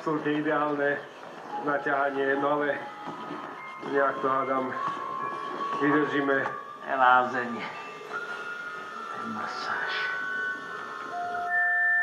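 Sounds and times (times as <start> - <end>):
steady high tone: 1.5 - 12.0.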